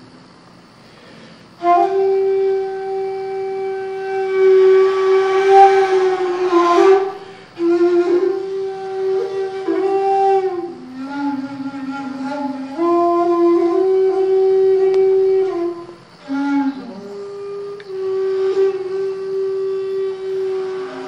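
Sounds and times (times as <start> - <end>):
bamboo flute playing slow notes: 1.6 - 21.0.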